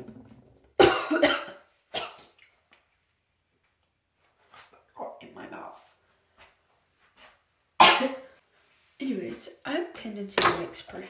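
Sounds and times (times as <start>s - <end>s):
woman coughing: 0.8s - 2.2s, 7.8s - 8.3s.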